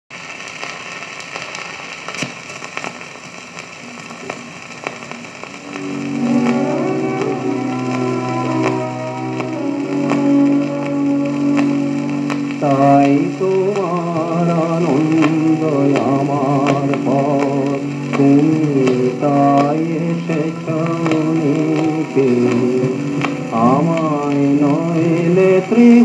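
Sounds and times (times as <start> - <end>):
record surface hiss and crackle: 0.1 - 26.0
instrumental music with sustained notes: 5.6 - 26.0.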